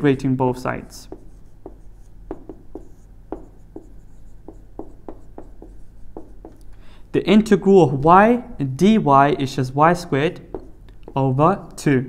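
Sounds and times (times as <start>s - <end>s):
marker writing on whiteboard: 0.9s - 6.8s, 10.0s - 11.4s.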